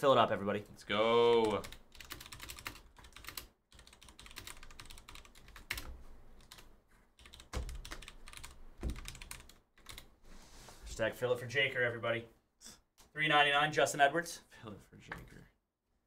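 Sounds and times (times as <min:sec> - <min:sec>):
keyboard typing: 0:01.2 - 0:10.1.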